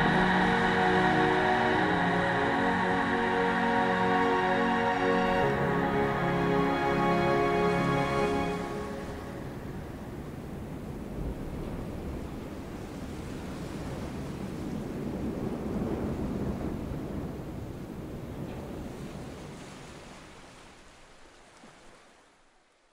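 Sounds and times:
ocean waves washing: 0:00.0 - 0:16.5.

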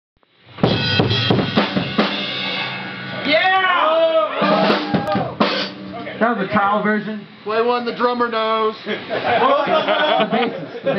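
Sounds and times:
drum kit hits: 0:00.4 - 0:06.2.

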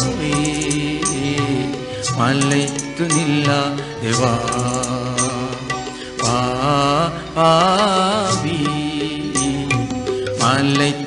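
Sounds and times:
instrumental accompaniment: 0:00.0 - 0:11.0.

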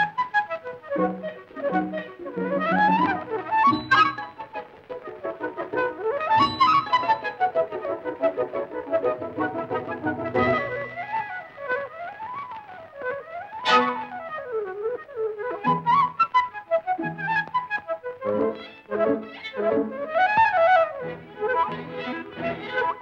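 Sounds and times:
brass: 0:00.0 - 0:23.0
flute runs: 0:00.0 - 0:23.0
orchestral cartoon music: 0:00.0 - 0:23.0.

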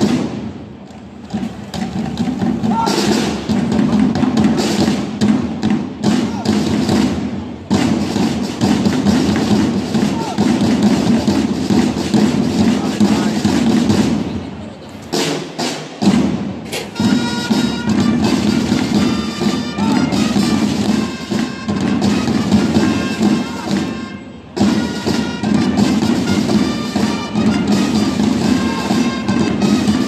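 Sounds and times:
dense drumming: 0:00.0 - 0:14.2
trumpet held notes: 0:17.0 - 0:30.0.

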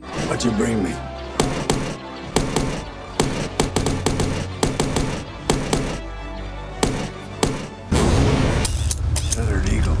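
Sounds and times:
action film music: 0:00.0 - 0:10.0
sharp shots and impacts: 0:01.4 - 0:06.0, 0:06.8 - 0:09.0.

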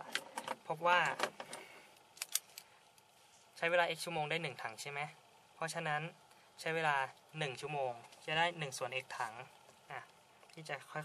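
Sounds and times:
man speaking: 0:03.6 - 0:11.0.

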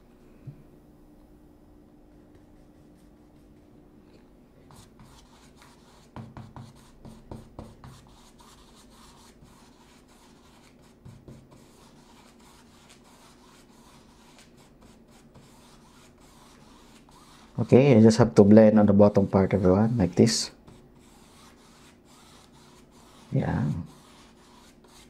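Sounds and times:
paintbrush scrubbing on canvas: 0:04.7 - 0:18.2, 0:19.4 - 0:25.0.

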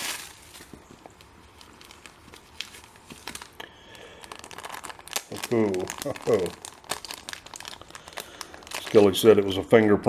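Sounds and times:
plastic bag crinkling: 0:00.0 - 0:09.8.

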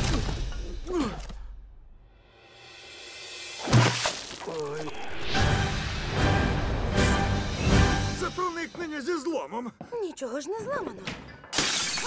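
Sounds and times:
bucket clattering splash: 0:03.6 - 0:04.5.

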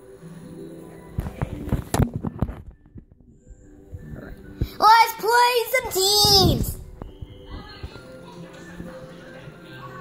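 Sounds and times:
soundtrack music from tv: 0:00.0 - 0:10.0.

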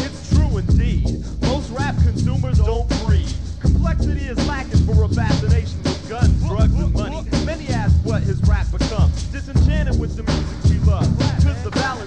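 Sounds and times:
heavy bass: 0:00.0 - 0:12.0
rapping over a beat: 0:00.0 - 0:12.0.

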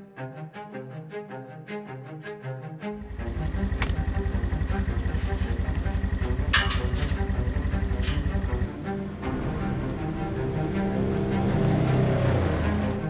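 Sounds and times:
background music: 0:00.0 - 0:13.0
utility vehicle engine running: 0:03.0 - 0:13.0.

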